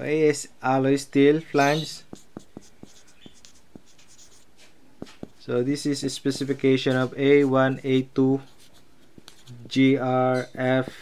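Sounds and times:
marker writing on whiteboard: 1.6s - 11.0s.

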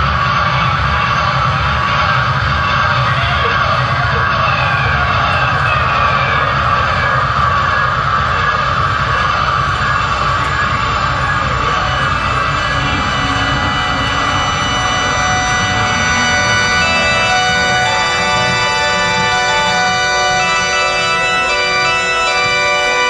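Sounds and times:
held organ chords: 0.0s - 23.0s
live band playing loud: 4.7s - 23.0s.

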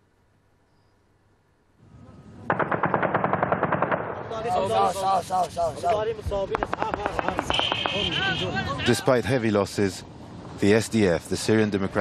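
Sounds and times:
automatic gunfire: 2.5s - 4.4s, 6.6s - 8.1s.

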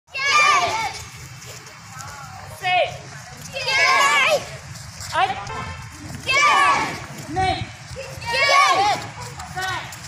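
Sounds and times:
children shouting together: 0.1s - 1.2s, 3.5s - 4.5s, 6.2s - 7.1s, 8.0s - 9.6s.

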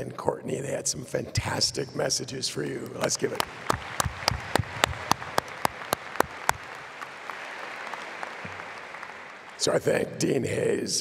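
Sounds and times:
sharp claps close by: 2.8s - 9.7s
crowd applauding: 2.8s - 10.3s.

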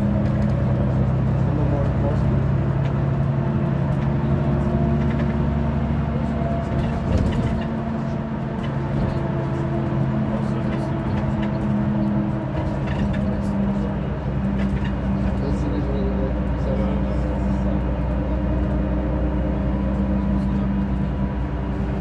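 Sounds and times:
bus engine drone: 0.0s - 22.0s
road noise: 0.0s - 22.0s.

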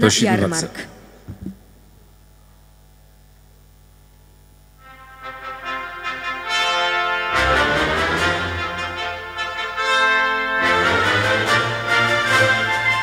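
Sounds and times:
steady low hum: 0.0s - 7.4s.

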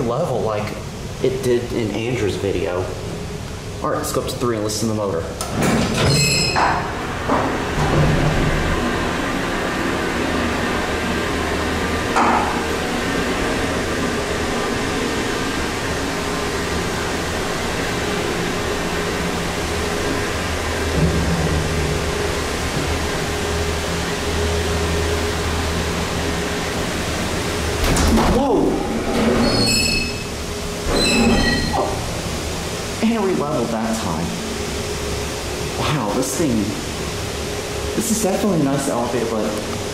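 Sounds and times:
elevator running rumble: 0.0s - 39.9s
low motor hum: 6.8s - 35.8s
elevator stopping with a knock: 20.9s - 23.1s.

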